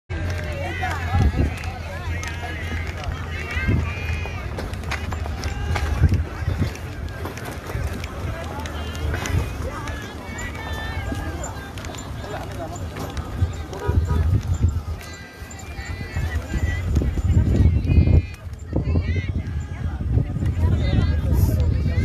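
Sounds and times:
people talking indistinctly: 0.1 - 22.0.

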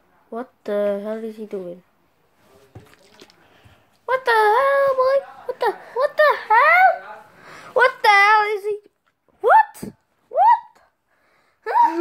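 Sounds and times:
young child squealing: 9.4 - 10.8, 11.6 - 12.0.

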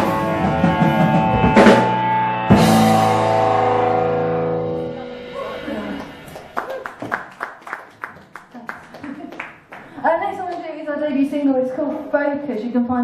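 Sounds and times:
rock band final chord: 0.0 - 6.4
audience clapping: 5.8 - 10.7.

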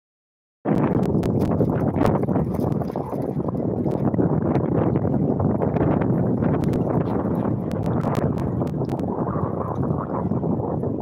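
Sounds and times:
wind buffeting microphone: 0.7 - 11.0.

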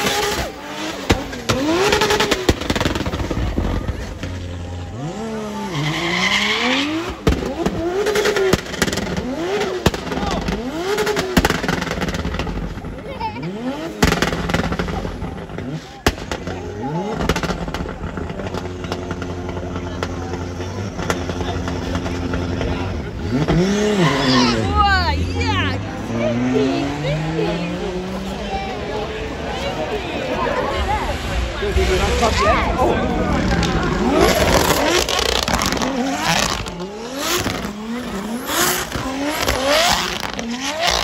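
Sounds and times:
car engine revving: 0.0 - 41.0
tyre noise: 0.0 - 41.0
sharp cracks: 33.4 - 37.7.

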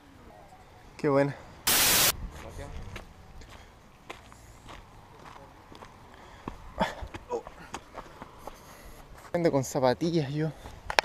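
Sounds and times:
footsteps on sand: 1.7 - 9.4.

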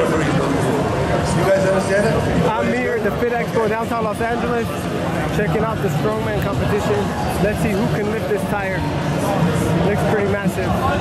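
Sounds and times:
din of a busy hall: 0.0 - 11.0
voices talking: 0.0 - 11.0.

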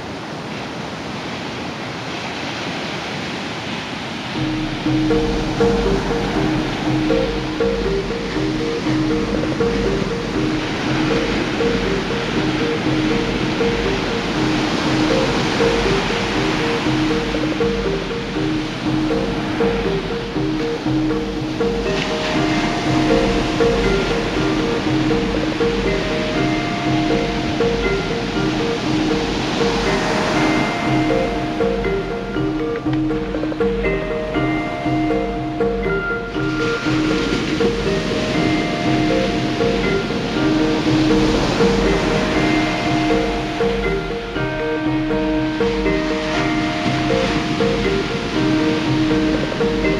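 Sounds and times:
ocean surf breaking on a beach: 0.0 - 49.9
soft new age music: 4.3 - 49.9.

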